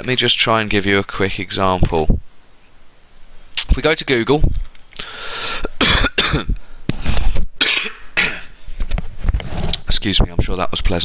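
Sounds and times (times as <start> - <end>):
man coughing: 5.6 - 6.6, 7.6 - 8.6.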